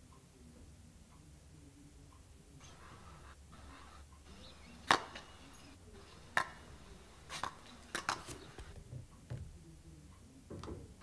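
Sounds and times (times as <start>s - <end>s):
faint hiss: 0.3s - 8.8s
basketball smacking asphalt: 4.3s - 8.8s.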